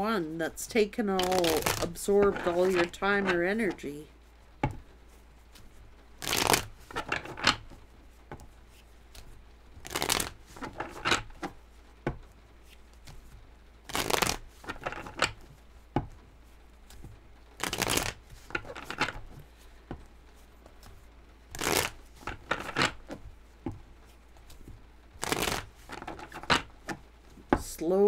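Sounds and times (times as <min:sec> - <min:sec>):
cards being shuffled: 0:01.1 - 0:27.7.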